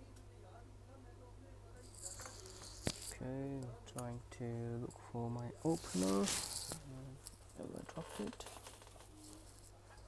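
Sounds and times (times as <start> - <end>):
handling rustle: 5.5 - 10.0.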